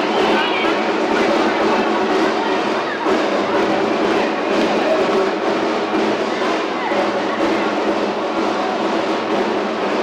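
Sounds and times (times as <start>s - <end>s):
street parade ambience: 0.0s - 10.0s.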